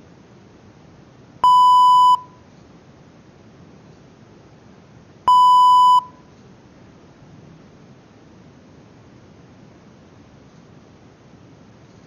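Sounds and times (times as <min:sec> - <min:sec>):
electronic alert beeps: 0:01.4 - 0:02.2, 0:05.3 - 0:06.1.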